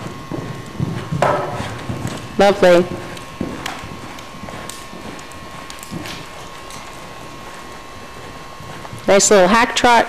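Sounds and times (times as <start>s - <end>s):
hoofbeats on sand: 0.0s - 9.2s.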